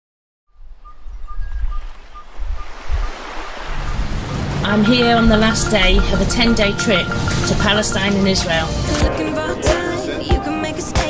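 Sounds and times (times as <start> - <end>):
wind buffeting the microphone: 0.5 - 7.9
water lapping at the shore: 0.6 - 10.0.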